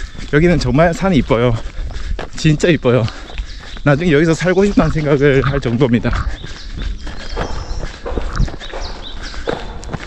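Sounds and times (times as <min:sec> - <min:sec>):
running footsteps on dirt: 0:00.0 - 0:10.0.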